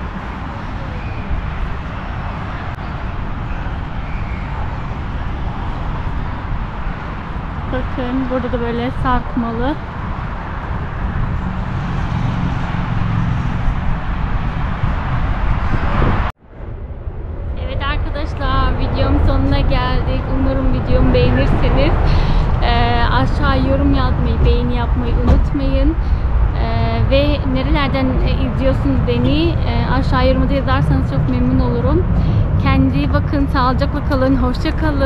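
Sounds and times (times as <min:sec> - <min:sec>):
wind rumble on microphone: 0:00.0 - 0:35.0
woman talking: 0:07.7 - 0:09.8, 0:17.6 - 0:35.0.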